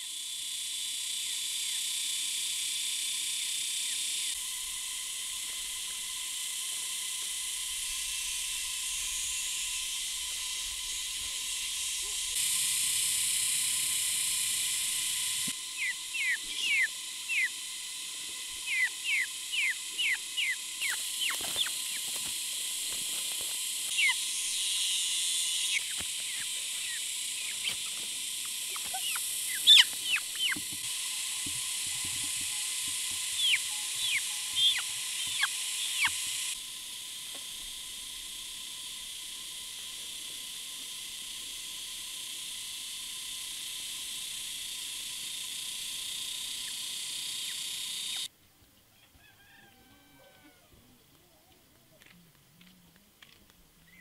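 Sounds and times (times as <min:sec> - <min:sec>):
outdoor ambience hiss: 0:00.0 - 0:54.0
chicks peeping: 0:15.7 - 0:17.6, 0:18.6 - 0:24.3, 0:25.6 - 0:36.4.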